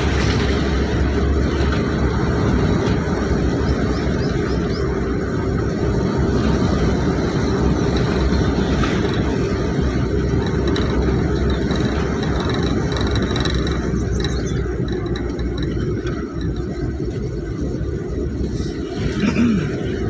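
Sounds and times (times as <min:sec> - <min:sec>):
vehicle engine and road noise: 0:00.0 - 0:20.0.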